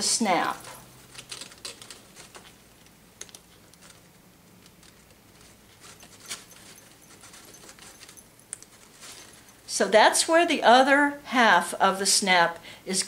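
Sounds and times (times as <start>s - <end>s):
coin scarf clicking and rustling: 0.4s - 9.7s.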